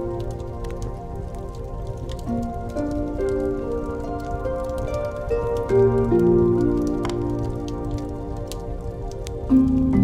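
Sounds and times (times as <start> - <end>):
fireplace crackling and popping: 0.0 - 10.0.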